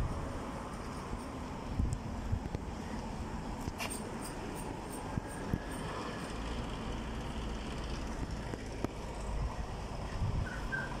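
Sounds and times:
cars driving by: 0.0s - 11.0s
low traffic rumble: 0.0s - 11.0s.

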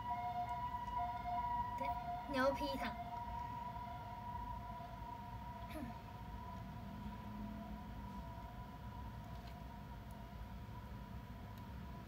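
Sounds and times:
faint voice: 5.6s - 6.1s.

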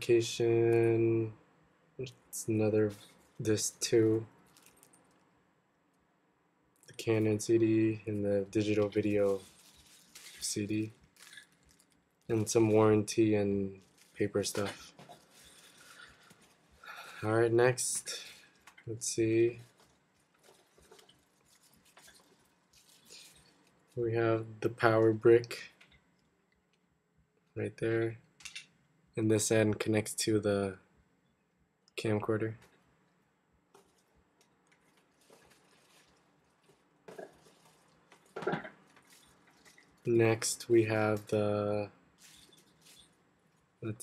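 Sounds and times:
packaging rustling in cardboard box: 9.0s - 11.9s, 13.8s - 16.9s, 19.6s - 23.6s, 34.7s - 40.0s.

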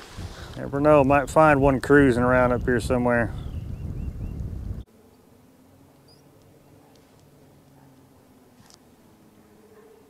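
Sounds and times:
small bird chirps: 6.0s - 6.4s.

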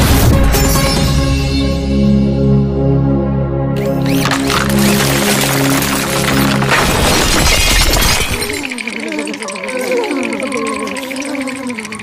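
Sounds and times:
cartoon glass shattering crash: 4.1s - 8.7s.

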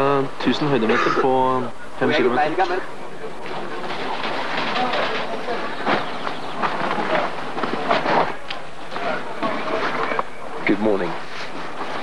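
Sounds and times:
background voices: 0.3s - 1.9s
tent fabric rustling and scraping: 11.1s - 12.0s.

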